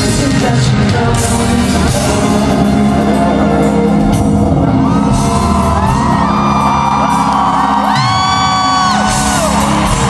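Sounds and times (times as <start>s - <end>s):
live pop concert music: 0.0s - 10.0s
audience whooping: 4.7s - 10.0s.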